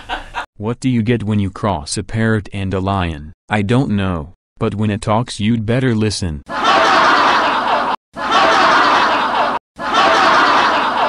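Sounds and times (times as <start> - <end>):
laugh track: 0.0 - 0.5, 6.5 - 11.0.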